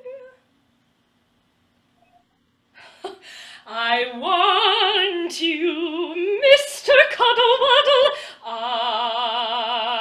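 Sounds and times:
woman singing opera note: 3.7 - 10.0.

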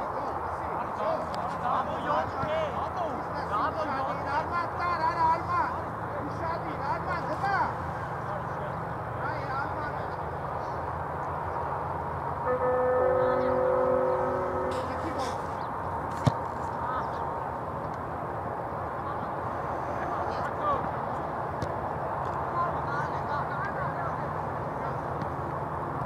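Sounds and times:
open-air noise: 0.0 - 26.0
held multi-tone horn: 12.4 - 15.6
distant shouts from players: 12.4 - 15.8.

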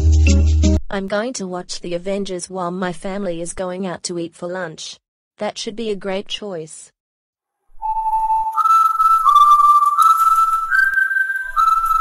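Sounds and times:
whistled tune: 7.8 - 12.0.

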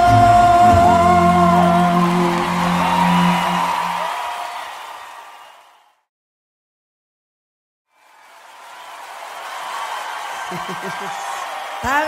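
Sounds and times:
romantic ballad held chord: 0.0 - 4.1.

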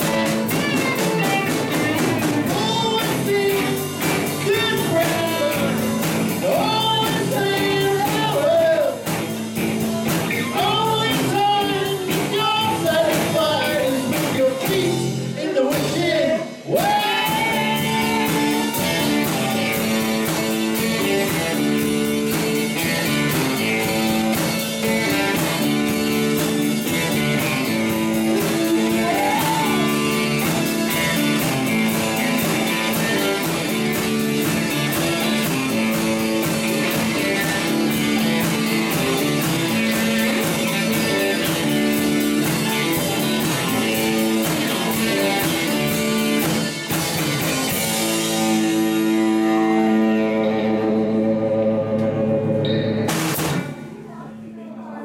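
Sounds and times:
drum kit beat: 0.0 - 54.2
strummed guitars: 0.0 - 54.6.

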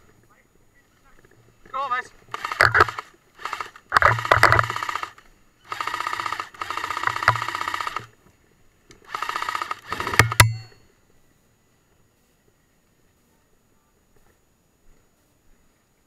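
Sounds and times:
airsoft gun full-auto bursts: 2.3 - 8.1, 9.1 - 10.7
sharp cracks: 2.3 - 8.1, 8.9 - 10.8
motor and gearbox whine: 2.3 - 8.2, 9.0 - 10.8.

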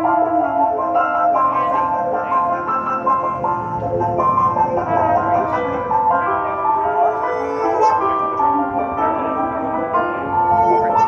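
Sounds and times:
electric keyboard: 0.0 - 11.0
trombone playing: 1.6 - 11.0.

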